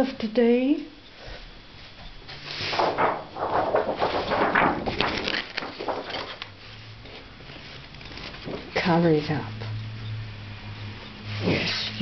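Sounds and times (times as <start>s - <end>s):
faint steady hum: 0.0s - 12.0s
paper rustling and crinkling: 2.2s - 8.8s.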